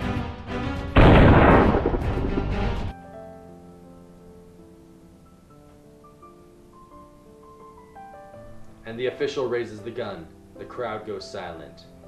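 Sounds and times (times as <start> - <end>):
theme music with steady beat: 0.0 - 3.0
loud explosion sound effect: 1.0 - 2.9.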